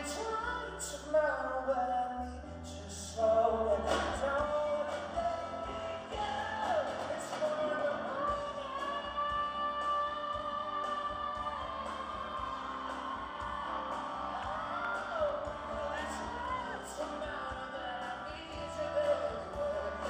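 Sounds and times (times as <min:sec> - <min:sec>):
man singing: 0:00.0 - 0:11.6, 0:14.8 - 0:20.0
grand piano: 0:00.0 - 0:20.0.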